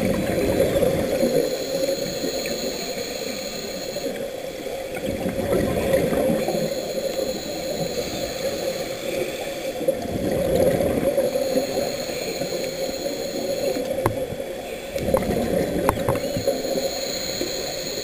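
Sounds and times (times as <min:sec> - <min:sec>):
gurgling exhaled bubbles: 0:00.0 - 0:02.8, 0:04.0 - 0:18.0
muffled underwater noise: 0:00.0 - 0:18.0.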